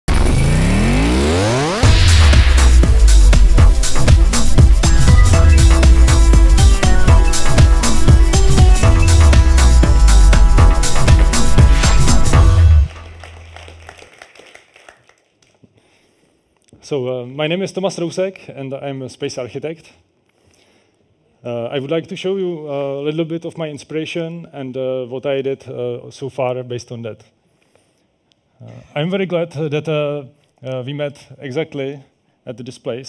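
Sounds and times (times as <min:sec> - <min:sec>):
synthesized rising sweep: 0:00.0 - 0:13.8
deep bass hit: 0:00.1 - 0:13.6
low tone: 0:00.1 - 0:13.8
electronic intro music: 0:00.1 - 0:13.9.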